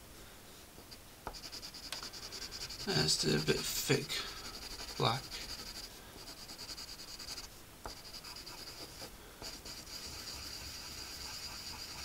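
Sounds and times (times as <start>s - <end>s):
pencil shading on paper: 1.3s - 12.0s.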